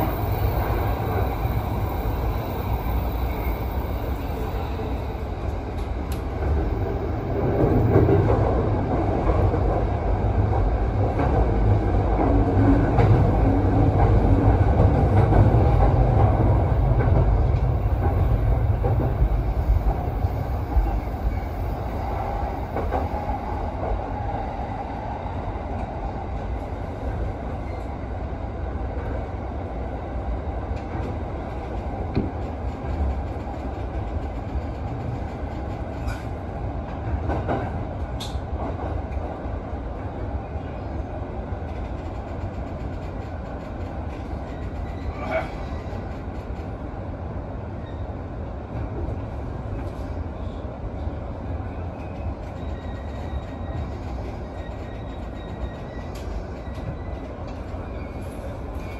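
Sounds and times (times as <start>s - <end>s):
electric train running rumble: 0.0s - 58.9s.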